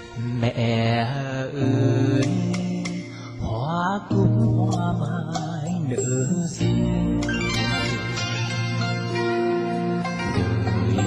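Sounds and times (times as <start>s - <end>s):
backing track music: 0.0s - 11.0s
person singing karaoke: 0.0s - 11.0s.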